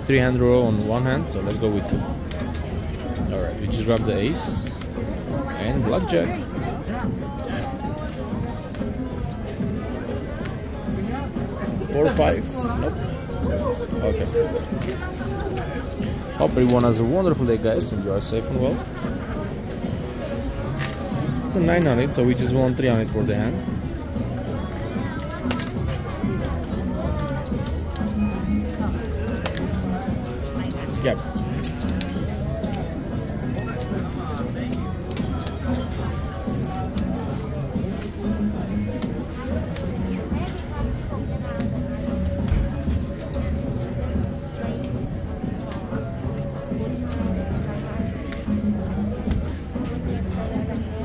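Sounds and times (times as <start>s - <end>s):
casino background music: 0.0s - 51.0s
murmured talk: 0.0s - 51.0s
voices: 0.0s - 51.0s
casino chips clicking: 24.7s - 40.7s.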